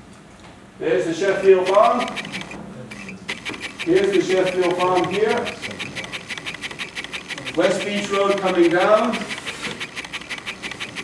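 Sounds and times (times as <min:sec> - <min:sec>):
man speaking: 0:07.3 - 0:09.3.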